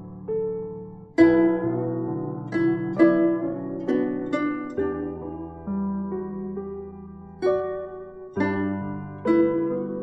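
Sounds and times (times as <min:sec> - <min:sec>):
plucked zither melody: 0:00.0 - 0:10.0.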